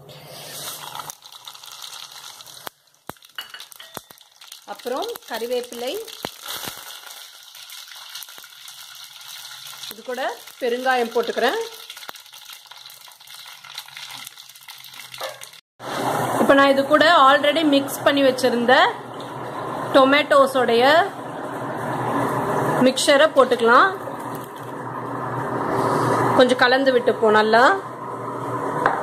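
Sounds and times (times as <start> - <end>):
oil sizzling in a pot: 0.1 - 16.5, 21.8 - 25.6.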